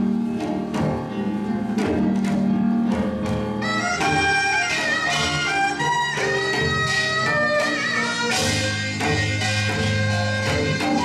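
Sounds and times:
traditional instrumental ensemble: 0.0 - 11.0
bamboo flute melody: 3.6 - 11.0.

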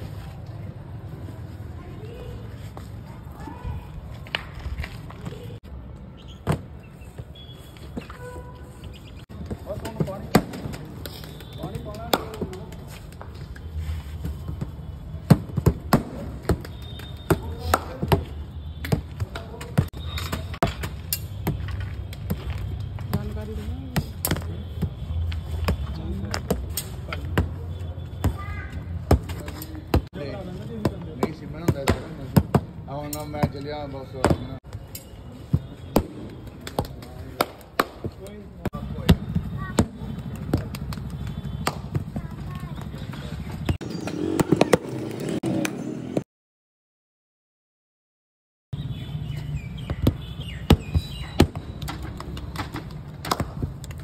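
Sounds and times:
hands slapping and clapping: 10.6 - 13.3, 40.2 - 41.9, 51.4 - 54.0.

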